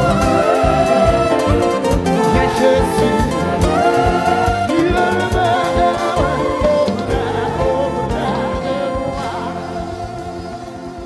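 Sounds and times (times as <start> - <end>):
gospel choir singing: 0.0 - 11.0
live band playing: 0.0 - 11.0.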